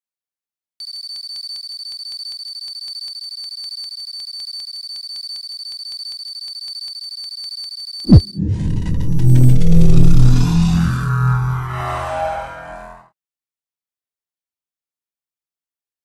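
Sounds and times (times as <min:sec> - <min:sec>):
high-pitched electronic tone: 0:08.1 - 0:13.1.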